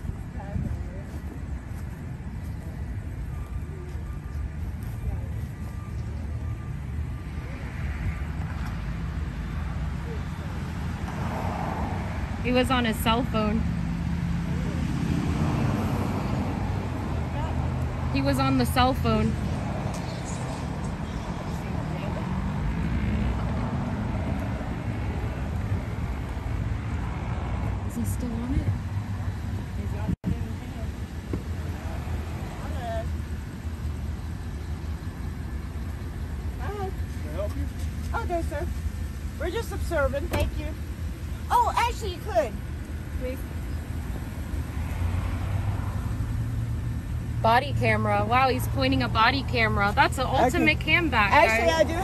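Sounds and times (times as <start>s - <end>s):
vehicle engine idling: 15.9s - 52.0s.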